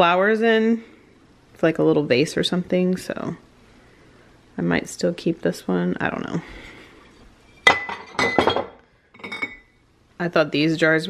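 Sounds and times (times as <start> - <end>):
glass jars clinking: 7.6 - 9.7.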